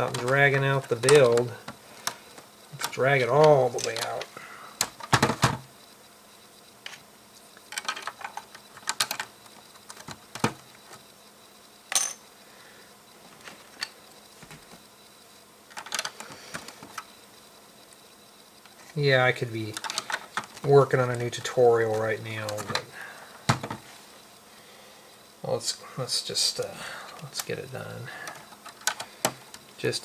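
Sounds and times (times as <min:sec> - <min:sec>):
plastic bricks clicking: 0:19.7 - 0:20.7.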